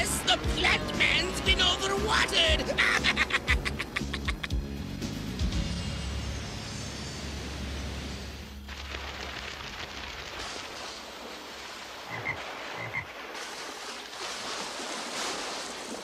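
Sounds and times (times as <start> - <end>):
cartoon rushing water: 8.6 - 16.0
frog croaking: 12.1 - 13.1.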